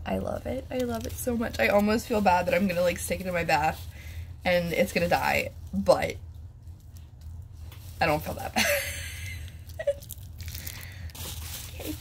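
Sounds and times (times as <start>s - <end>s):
bubble wrap crinkling: 0.4s - 12.0s.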